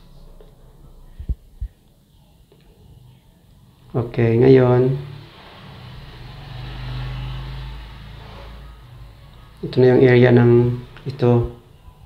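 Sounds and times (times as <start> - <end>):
passing motor vehicle rumble: 3.8 - 12.0.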